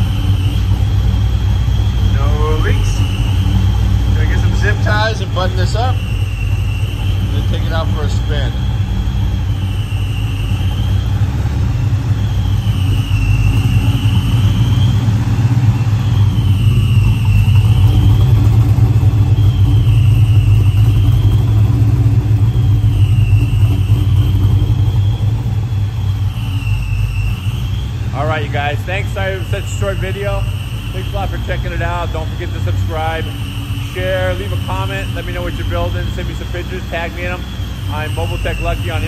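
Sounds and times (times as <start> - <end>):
car engine idling: 0.0 - 39.0.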